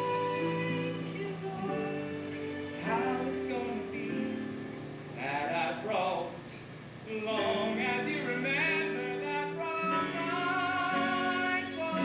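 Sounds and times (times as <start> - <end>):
held accompaniment notes: 0.0 - 5.9
person singing with heavy vibrato: 0.0 - 6.5, 7.1 - 12.0.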